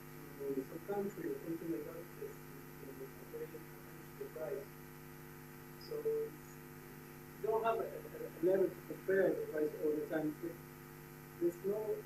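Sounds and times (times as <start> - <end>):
electrical mains hum: 0.0 - 12.0
faint speech: 0.2 - 4.7.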